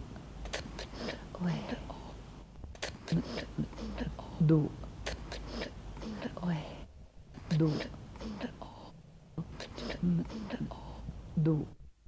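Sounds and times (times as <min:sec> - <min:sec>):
woman whispering: 0:00.5 - 0:02.2, 0:03.0 - 0:11.8.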